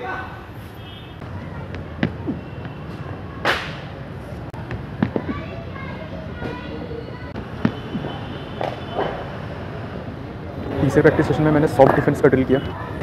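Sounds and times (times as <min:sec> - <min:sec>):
cricket balls cracking on bat: 0:01.2 - 0:03.9, 0:04.5 - 0:05.5, 0:07.3 - 0:09.2.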